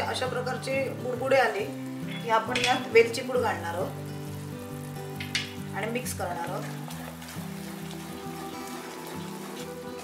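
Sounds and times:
background music: 0:00.0 - 0:10.0
syrup boiling and bubbling: 0:03.6 - 0:10.0.

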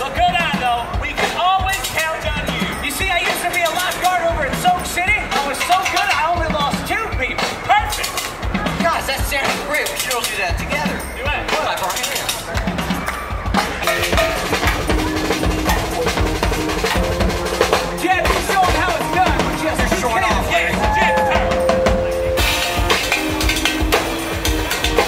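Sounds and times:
drum kit: 0:00.0 - 0:25.0.

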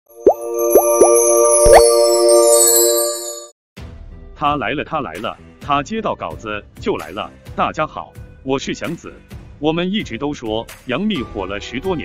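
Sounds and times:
bright synth chord with shimmer: 0:00.1 - 0:03.5
rising bloop pops: 0:00.2 - 0:02.1.

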